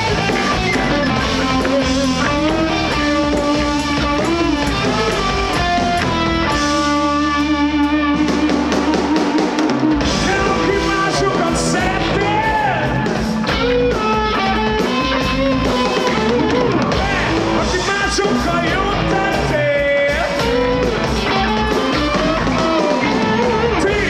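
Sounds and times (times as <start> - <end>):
bass guitar: 0.0 - 24.0
drums: 0.0 - 24.0
electric guitar lines: 0.0 - 24.0.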